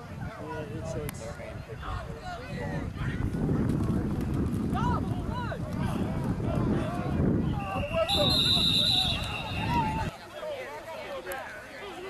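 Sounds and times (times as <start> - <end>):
wind buffeting microphone: 0.0 - 10.2.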